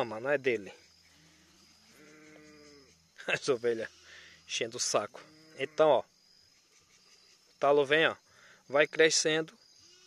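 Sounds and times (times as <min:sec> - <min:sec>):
sheep bleating: 0:01.3 - 0:02.9, 0:03.6 - 0:04.4, 0:05.2 - 0:06.0.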